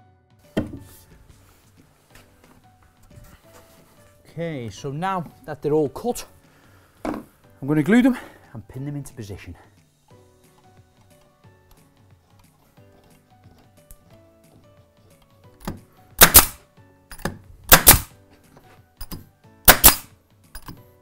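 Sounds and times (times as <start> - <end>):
pin nailer firing: 15.6 - 16.6, 17.2 - 18.1, 19.6 - 20.7.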